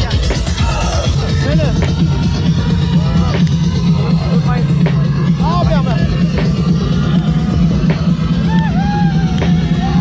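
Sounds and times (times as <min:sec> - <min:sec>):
heavy bass and drum hits: 0:00.0 - 0:10.0.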